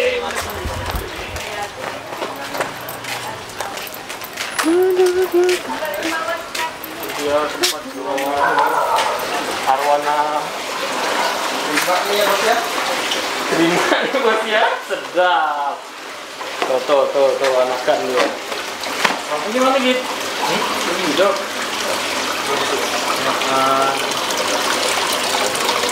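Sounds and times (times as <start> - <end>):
running water from tanks: 0.0 - 25.9
men talking: 7.0 - 10.6, 13.5 - 15.8.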